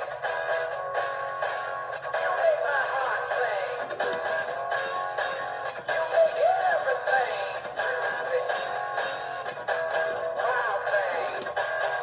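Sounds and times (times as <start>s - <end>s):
song through small speaker: 0.0s - 12.0s.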